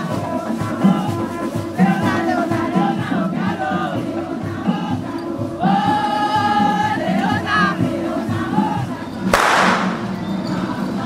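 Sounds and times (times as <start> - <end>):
voices chanting in unison: 0.0 - 11.0
sharp crash: 9.4 - 10.1.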